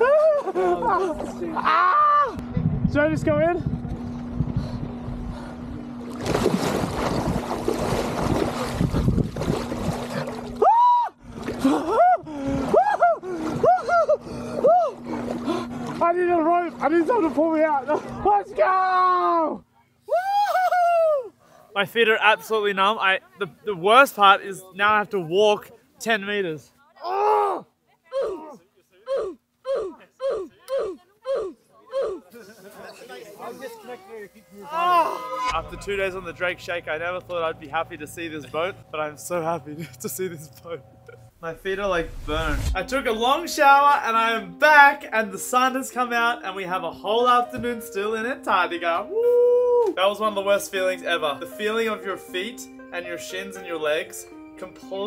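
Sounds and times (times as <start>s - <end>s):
water splashing: 6.0s - 10.6s
man gasping cries: 11.6s - 15.7s, 27.1s - 32.3s
man yelping: 27.0s - 32.3s, 34.6s - 35.5s.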